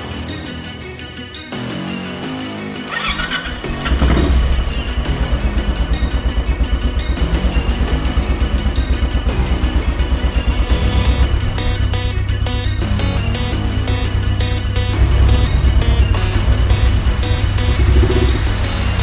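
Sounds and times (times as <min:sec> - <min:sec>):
background music: 0:00.0 - 0:19.0
motorcycle engine starting and idling: 0:02.8 - 0:19.0.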